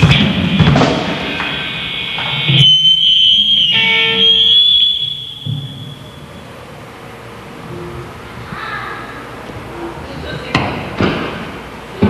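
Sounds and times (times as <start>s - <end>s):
heavy metal band final note: 0.0s - 4.7s
electric guitar feedback whine: 0.0s - 8.4s.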